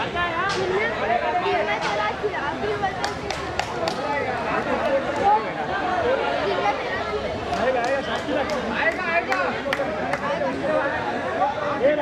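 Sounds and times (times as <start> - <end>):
men chattering: 3.7 - 6.6, 7.4 - 12.0.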